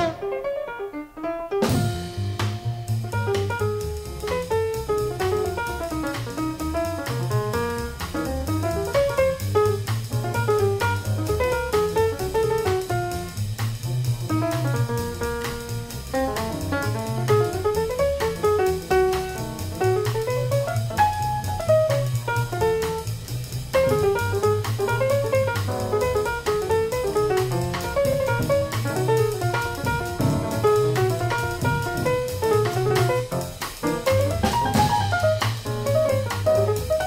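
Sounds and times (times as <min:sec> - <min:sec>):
piano: 0:00.0 - 0:37.0
drum kit ride cymbal: 0:01.6 - 0:37.0
walking double bass: 0:01.6 - 0:37.0.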